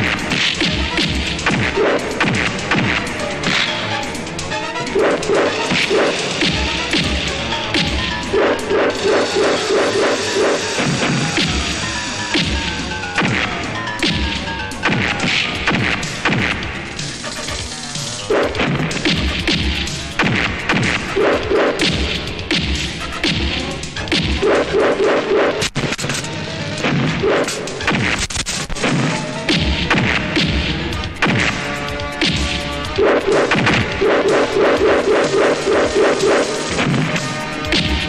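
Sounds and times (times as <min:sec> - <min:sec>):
punch and kick whacks: 0:00.0 - 0:03.9, 0:05.0 - 0:08.0, 0:12.3 - 0:12.6, 0:13.2 - 0:16.7, 0:18.4 - 0:24.6, 0:26.8 - 0:38.0
background film score: 0:00.0 - 0:38.0.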